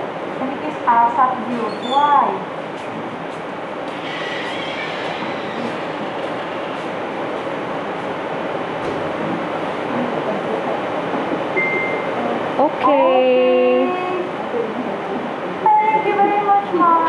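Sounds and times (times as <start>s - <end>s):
rushing rumble: 2.2s - 14.4s.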